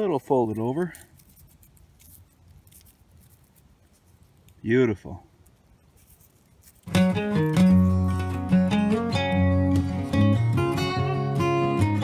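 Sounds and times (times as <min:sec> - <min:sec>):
small ticks: 0:00.9 - 0:04.7, 0:05.3 - 0:07.9.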